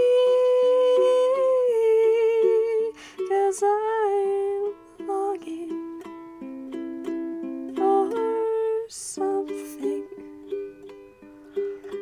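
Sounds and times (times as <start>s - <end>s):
plucked ukulele: 0.0s - 12.0s.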